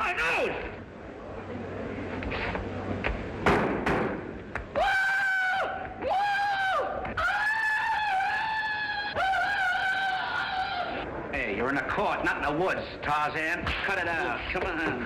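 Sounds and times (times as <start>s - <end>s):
sharp knocks: 3.4s - 4.7s.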